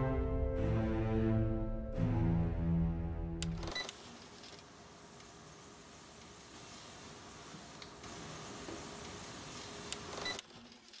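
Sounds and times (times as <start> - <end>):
spray can hissing: 3.9 - 10.4.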